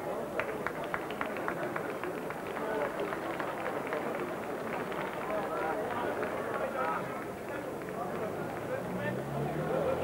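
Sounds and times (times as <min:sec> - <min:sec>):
people clapping: 0:00.0 - 0:09.4
murmur of crowd voices: 0:00.0 - 0:10.0.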